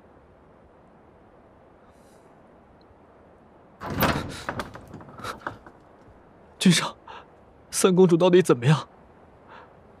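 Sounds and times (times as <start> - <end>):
loud clatter: 3.8 - 5.8
door panels rattling: 3.8 - 6.0
heavy wooden doors opening: 3.8 - 6.2.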